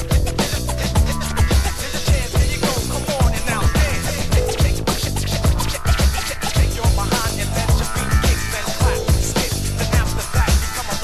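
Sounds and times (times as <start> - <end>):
hip-hop drums and bass: 0.0 - 11.0
turntable scratching: 0.0 - 11.0.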